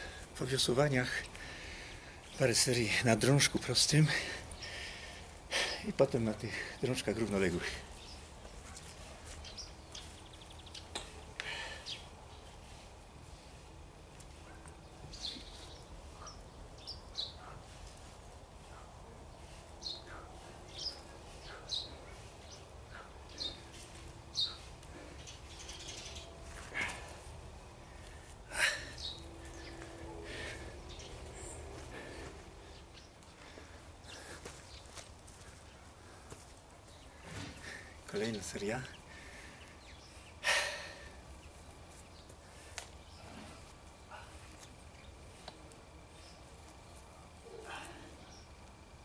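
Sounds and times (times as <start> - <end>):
outdoor background noise: 0.0 - 49.0
small birds chirping: 0.0 - 49.0.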